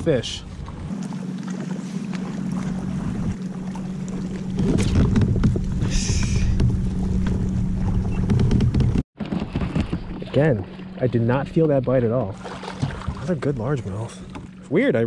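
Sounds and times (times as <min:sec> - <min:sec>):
steady low hum: 0:00.1 - 0:09.0
wind buffeting microphone: 0:04.1 - 0:10.3.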